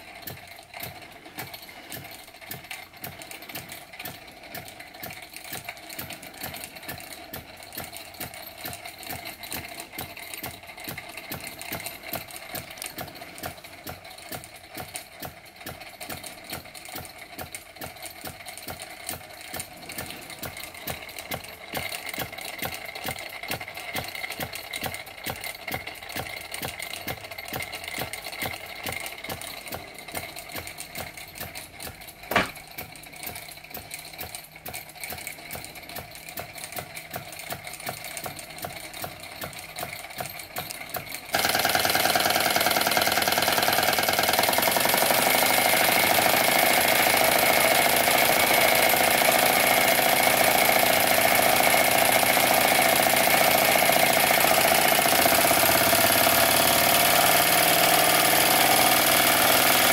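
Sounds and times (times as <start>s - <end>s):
toy steam engine clattering: 0.0s - 59.9s.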